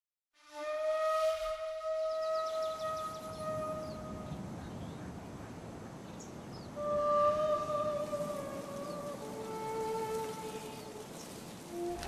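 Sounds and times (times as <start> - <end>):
long flute-like note: 0.4 - 4.5, 6.8 - 12.0.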